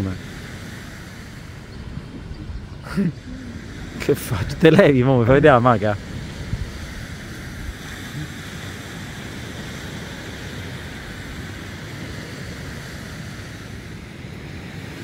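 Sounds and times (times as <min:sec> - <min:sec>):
surf washing onto shore: 0:00.0 - 0:15.0
wind buffeting microphone: 0:00.0 - 0:15.0.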